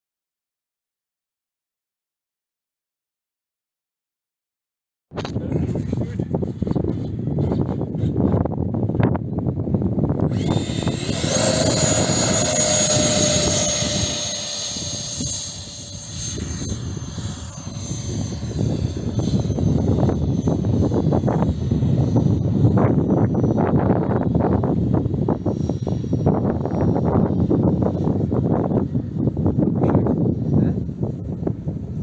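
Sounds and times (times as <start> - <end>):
wind on microphone: 5.1 - 32.0
electric ducted fan roaring: 5.2 - 32.0.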